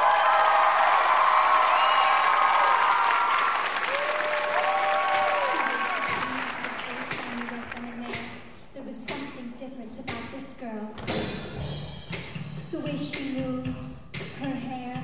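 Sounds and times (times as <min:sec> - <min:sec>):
audience applauding and cheering: 0:00.0 - 0:08.3.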